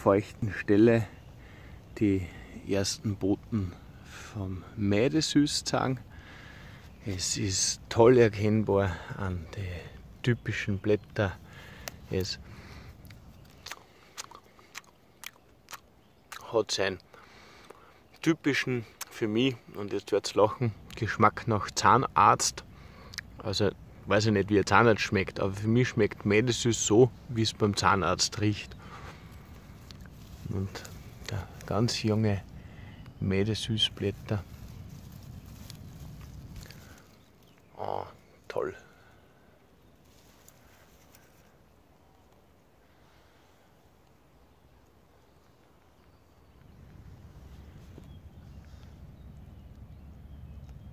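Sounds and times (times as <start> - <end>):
crunchy chewing of leaf: 11.4 - 16.5, 28.2 - 43.1
dry grass rustling: 25.9 - 50.4
low microphone rumble: 26.1 - 39.0.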